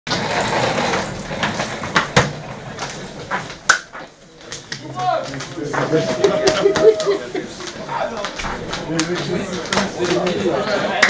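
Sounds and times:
hubbub of voices: 2.3 - 11.0.

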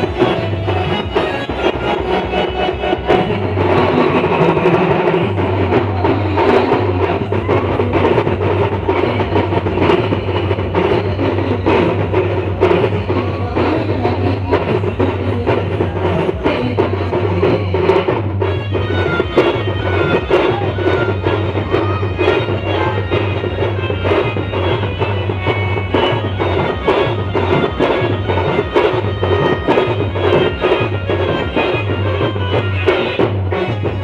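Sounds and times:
steady drum beat: 0.0 - 34.0.

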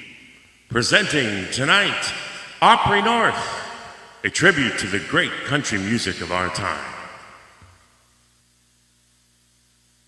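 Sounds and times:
man's announcing voice echoing: 0.7 - 7.4.

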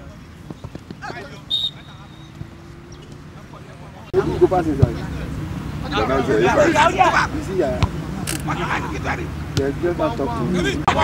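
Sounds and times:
referee's whistle: 1.4 - 2.4.

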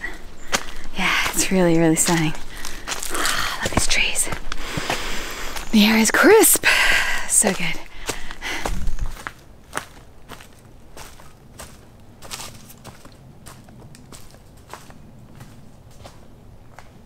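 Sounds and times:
footsteps crunching on leafy trail: 0.0 - 17.0.

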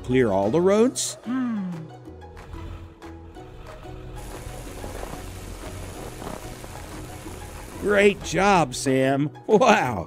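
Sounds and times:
soft background music: 0.0 - 10.0
snowplow pushing snow hiss: 3.6 - 8.8.

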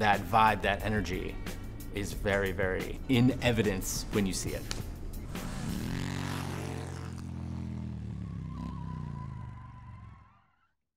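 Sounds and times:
motorcycle engine revving: 4.9 - 10.2.

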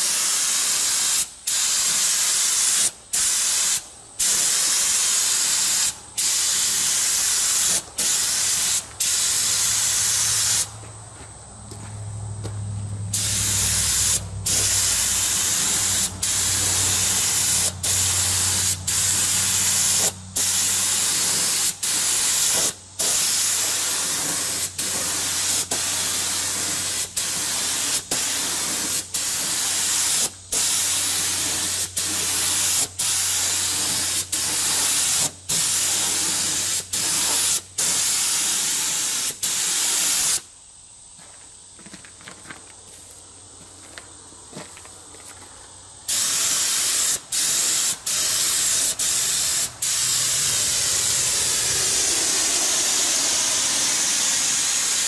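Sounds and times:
spray gun hissing: 0.0 - 10.8, 13.1 - 40.4, 46.1 - 55.0.

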